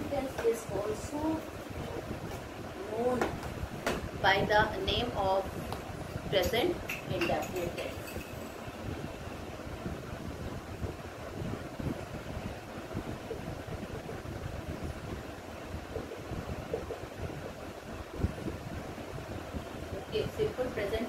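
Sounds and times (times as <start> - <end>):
low rumbling wind buffeting microphone: 0.0 - 21.0.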